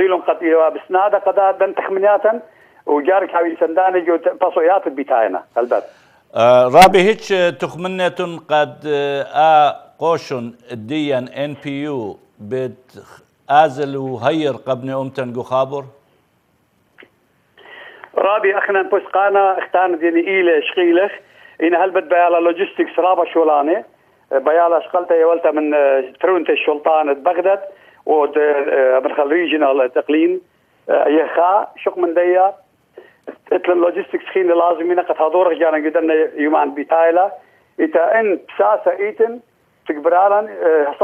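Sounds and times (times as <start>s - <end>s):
man talking over telephone: 0.0s - 16.0s, 18.2s - 32.6s, 33.3s - 41.0s.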